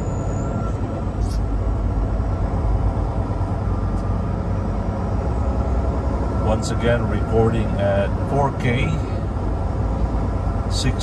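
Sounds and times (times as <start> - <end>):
truck engine drone: 0.0 - 11.0
tyre and road noise: 0.0 - 11.0.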